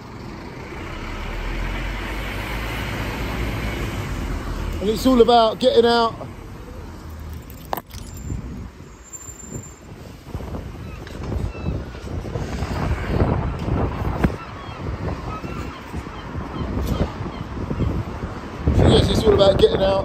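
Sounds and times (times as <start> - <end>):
wind buffeting microphone: 6.1 - 20.0
camera handling noise: 7.3 - 8.2.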